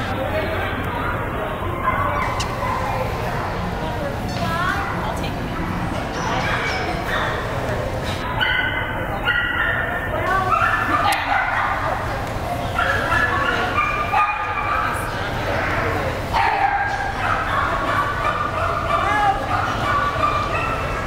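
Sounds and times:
people talking: 0.0 - 21.0.

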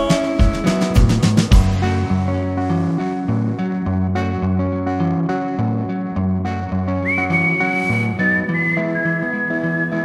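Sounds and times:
drum kit: 0.0 - 3.0
electric guitar riff: 0.0 - 10.0
whistled melody: 7.0 - 10.0.

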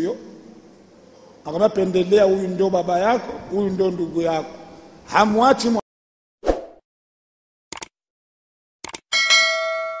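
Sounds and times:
notification bell ding: 9.1 - 10.0.

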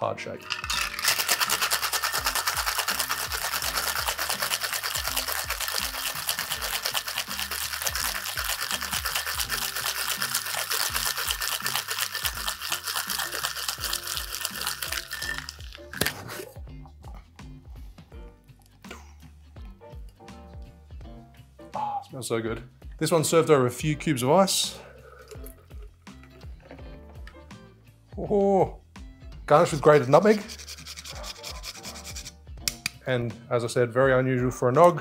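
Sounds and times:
background music: 0.0 - 35.0
ice rattling in metal shaker: 0.4 - 16.1, 29.8 - 32.3.

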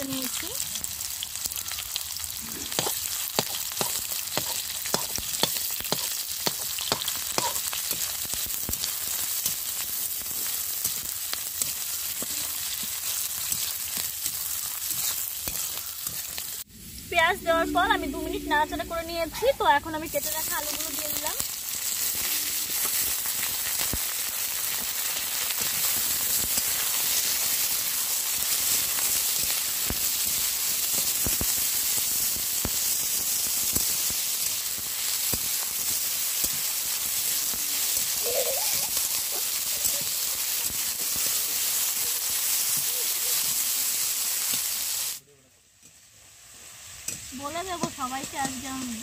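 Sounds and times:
food sizzling in hot oil: 0.0 - 49.0.

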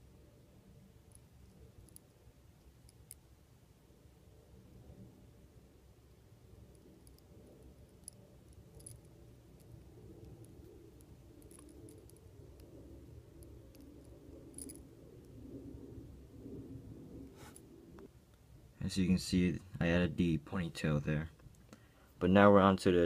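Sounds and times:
low room hum: 0.0 - 23.0.

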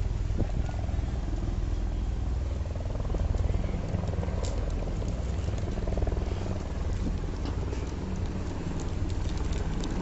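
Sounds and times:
helicopter rotor and turbine rumble: 0.0 - 10.0.

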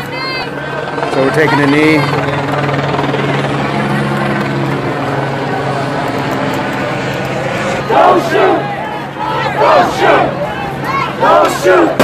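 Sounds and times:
crowd noise: 0.0 - 12.0
helicopter hovering: 0.0 - 12.0.

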